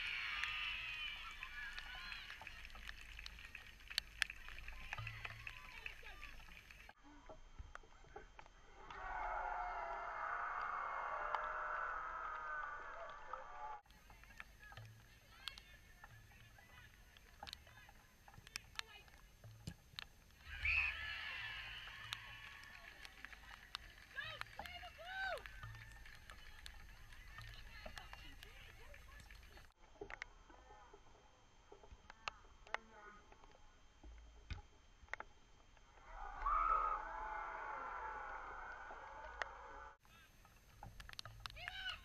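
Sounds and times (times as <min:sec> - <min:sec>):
players shouting: 0:00.0 - 0:02.7, 0:20.4 - 0:26.0
faint clicks: 0:00.0 - 0:37.4, 0:38.1 - 0:42.0
sharp ticks: 0:13.8 - 0:20.8.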